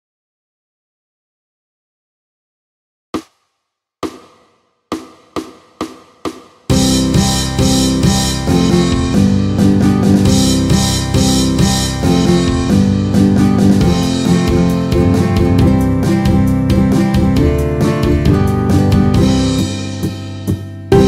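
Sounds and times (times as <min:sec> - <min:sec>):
pop band playing: 0:06.7 - 0:21.0
ukulele strumming: 0:13.4 - 0:19.5.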